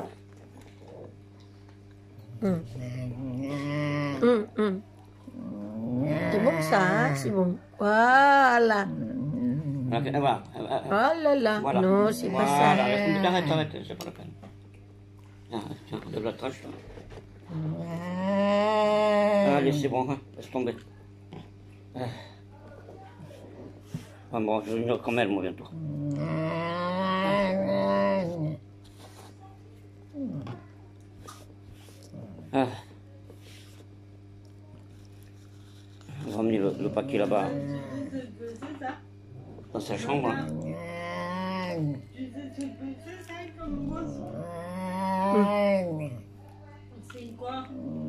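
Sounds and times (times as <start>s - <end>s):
steady low hum: 0.0s - 48.0s
person moaning: 2.4s - 4.8s, 5.4s - 7.4s, 12.0s - 13.6s, 17.5s - 19.8s, 25.8s - 28.6s, 40.2s - 42.1s, 43.6s - 46.2s.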